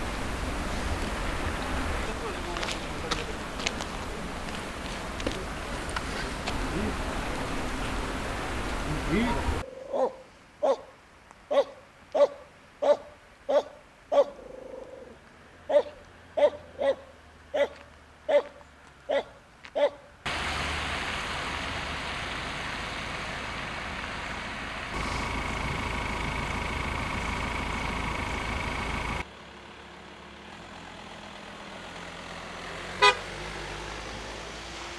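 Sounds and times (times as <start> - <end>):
dog barking: 9.8 - 10.9, 11.5 - 14.4, 15.7 - 20.1.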